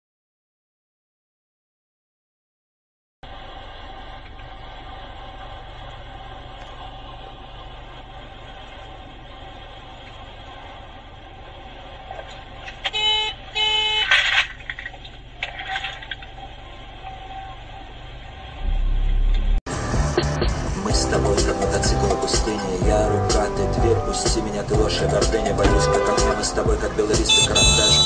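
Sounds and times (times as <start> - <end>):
in-car road and engine noise: 3.2 - 28.0
car horn honks: 12.8 - 14.6, 25.5 - 28.0
loud low rumble: 17.8 - 27.8.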